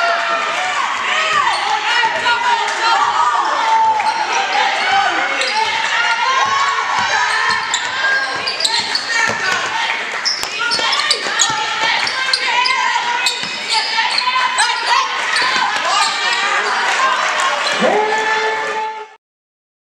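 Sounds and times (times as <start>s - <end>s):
people shouting and calling: 0.0s - 19.2s.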